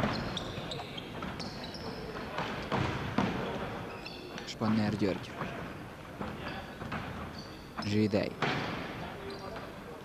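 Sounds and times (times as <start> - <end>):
shoe squeaks: 0.0 - 2.3, 3.8 - 4.3, 7.2 - 8.0, 9.2 - 9.6.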